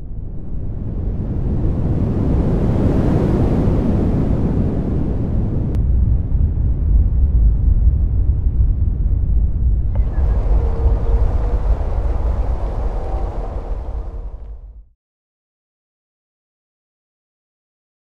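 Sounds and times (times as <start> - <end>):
deep steady rumble: 5.0 - 14.9
rushing wind-like hiss: 10.0 - 14.6
faint held tones: 10.0 - 14.7.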